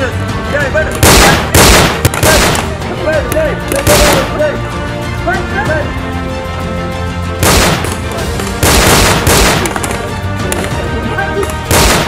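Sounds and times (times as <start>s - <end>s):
background music with sustained tones: 0.0s - 12.0s
rapid gunfire: 1.0s - 2.7s, 7.4s - 9.9s, 11.7s - 12.0s.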